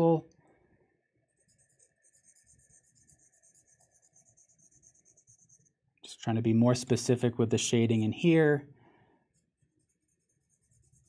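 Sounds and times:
pencil shading on paper: 1.0 - 6.0, 9.2 - 11.0.

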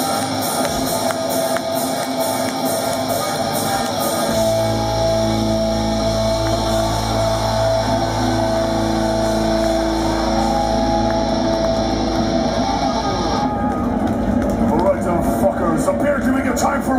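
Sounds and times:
crowd cheering and shouting: 0.0 - 16.9.

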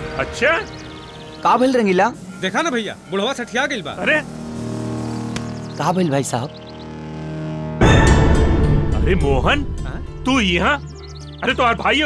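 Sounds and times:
low background music drone: 0.0 - 12.0.

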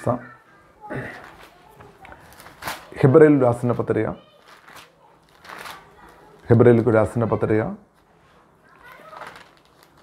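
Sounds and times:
soft rustle: 1.2 - 2.9, 3.7 - 6.8, 8.0 - 10.0
man speaking: 2.9 - 4.2, 6.5 - 7.8.

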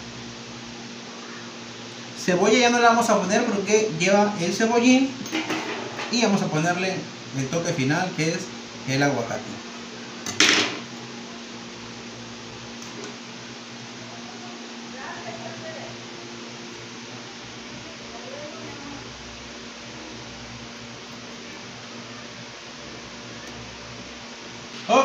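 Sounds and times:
kitchen appliance humming: 0.0 - 25.0
room hiss: 0.0 - 25.0.

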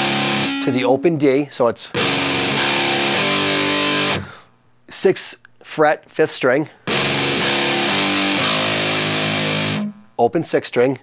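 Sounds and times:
distorted electric guitar riff: 0.0 - 1.3, 1.9 - 4.4, 6.9 - 10.2.

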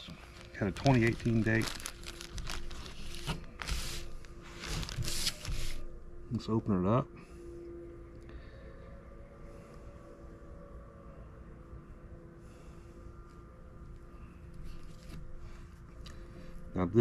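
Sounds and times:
plastic zip bag handled: 0.0 - 5.8
paper towel crinkling: 0.0 - 5.9
steady background hum: 0.0 - 17.0.

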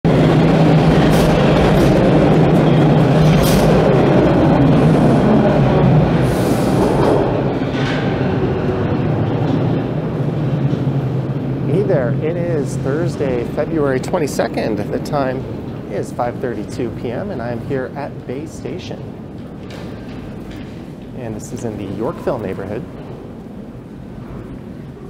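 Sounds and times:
subway train rumbling: 0.0 - 25.0.

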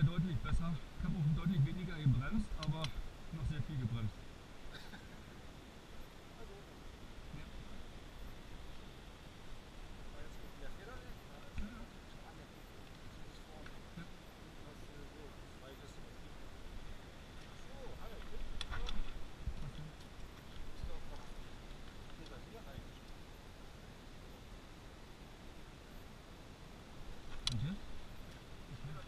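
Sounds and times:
people talking quietly: 0.0 - 29.0
isolated clicks: 2.6 - 3.0, 27.3 - 27.8.

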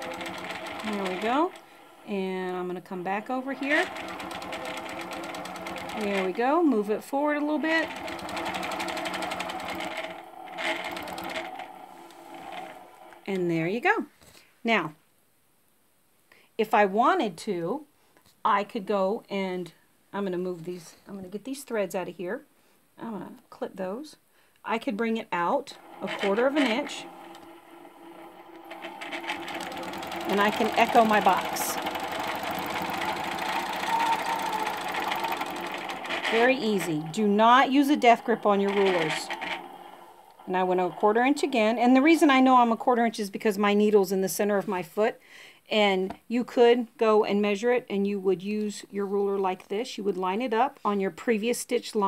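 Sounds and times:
quilting machine stitching: 0.0 - 13.5, 25.4 - 42.8.

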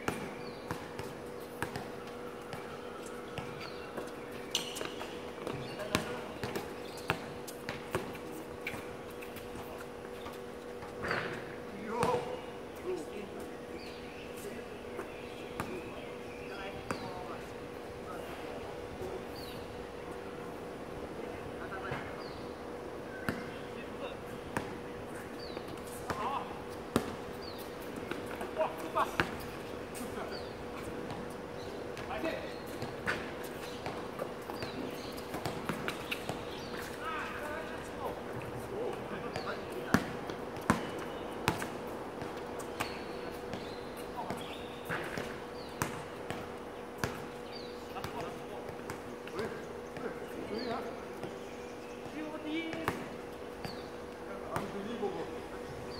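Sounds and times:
basketball bouncing: 0.0 - 1.9, 32.8 - 36.5, 39.3 - 43.7, 44.3 - 47.2.

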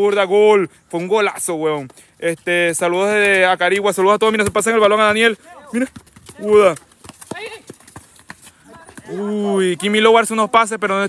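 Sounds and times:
ball and feet hitting concrete: 0.0 - 11.0.

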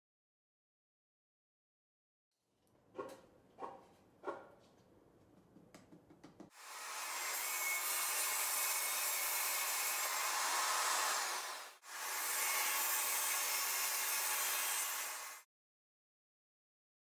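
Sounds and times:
table saw cutting plywood: 6.5 - 15.5.

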